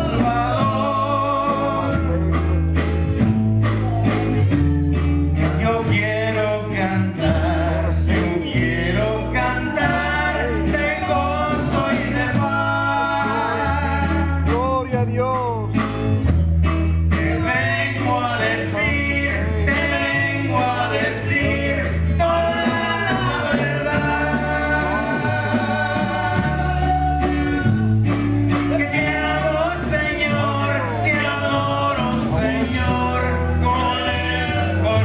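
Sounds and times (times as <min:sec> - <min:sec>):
men singing into microphones: 0:00.0 - 0:02.8, 0:05.4 - 0:15.5, 0:17.1 - 0:35.0
guitars: 0:00.0 - 0:35.0
low bass line: 0:00.0 - 0:35.0
steady drum beat: 0:00.0 - 0:35.0.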